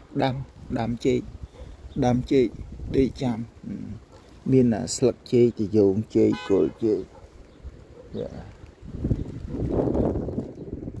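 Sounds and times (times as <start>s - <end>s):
wind buffeting microphone: 0.0s - 6.2s, 7.0s - 11.0s.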